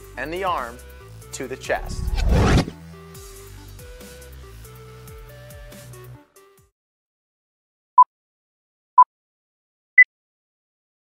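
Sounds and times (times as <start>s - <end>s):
soft background music: 0.0s - 2.2s
rising whoosh effect: 1.7s - 2.8s.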